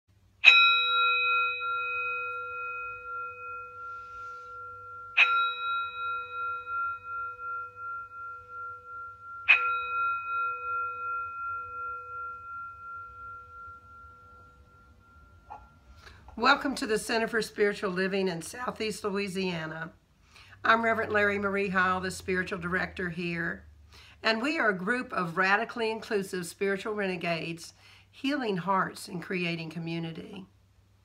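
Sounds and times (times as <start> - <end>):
singing bowl struck and ringing: 0.4 - 16.8.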